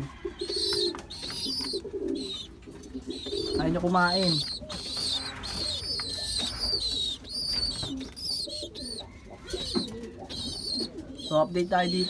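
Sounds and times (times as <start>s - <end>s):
pigeons cooing: 0.0s - 12.0s
high bird chirping: 0.4s - 12.0s.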